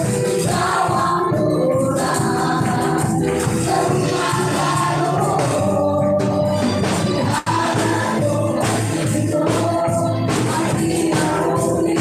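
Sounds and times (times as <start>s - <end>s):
electric guitar: 0.0s - 12.0s
group singing: 0.0s - 12.0s
keyboard: 0.0s - 12.0s
live gospel band playing: 0.0s - 12.0s.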